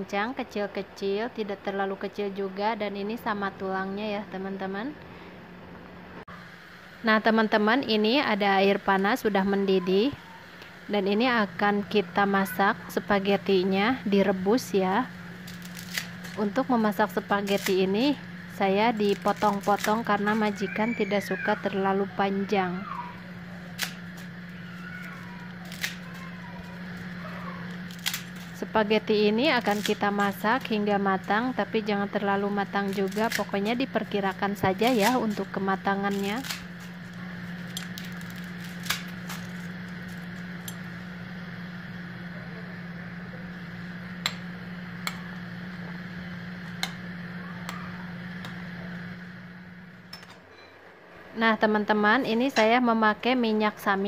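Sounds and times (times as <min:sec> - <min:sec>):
low even hum: 0:00.0 - 0:54.0.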